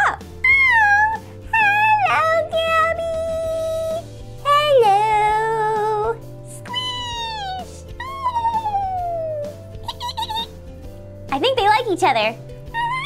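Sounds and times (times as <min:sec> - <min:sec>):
high wordless vocal sounds: 0:00.0 - 0:10.6, 0:12.6 - 0:13.0
background music: 0:00.0 - 0:13.0.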